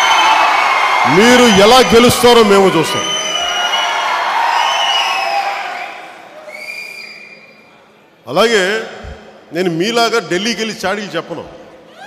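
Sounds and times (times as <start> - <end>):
crowd cheering: 0.0 - 7.2
shrill whistles: 2.9 - 7.7.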